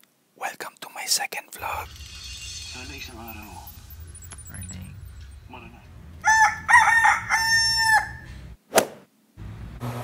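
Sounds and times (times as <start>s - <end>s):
steady low hum: 1.6s - 8.6s
rooster crowing: 6.2s - 8.4s.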